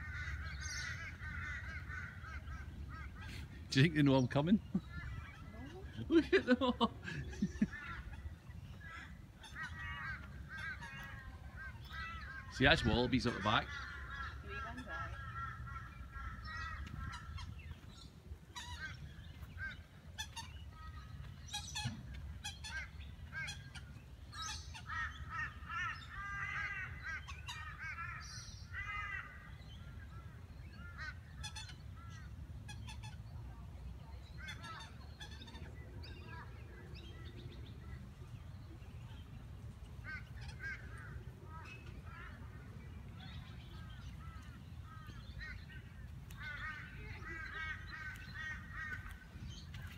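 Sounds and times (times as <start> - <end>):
birds honking: 0.0 - 33.5, 34.1 - 49.9.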